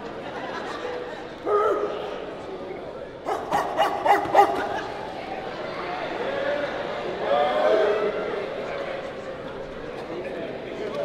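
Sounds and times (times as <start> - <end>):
crowd chatter: 0.0 - 11.0
men barking like dogs: 3.2 - 4.9.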